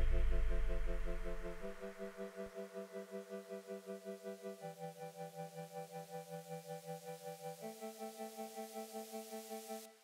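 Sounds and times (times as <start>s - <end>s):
deep bass note: 0.0s - 2.2s
pulsing synth chords: 0.0s - 7.8s.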